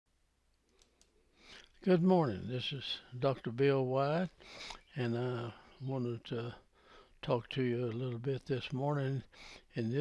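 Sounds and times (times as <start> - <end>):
faint clicks: 0.5 - 1.8
man's voice: 1.8 - 6.6, 7.2 - 10.0
short breath in: 4.4 - 4.8, 6.7 - 7.2.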